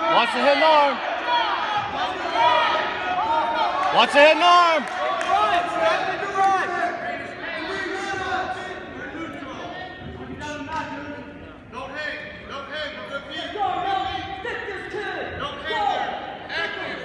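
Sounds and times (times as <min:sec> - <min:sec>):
spectators and coaches calling out: 0:00.0 - 0:17.0.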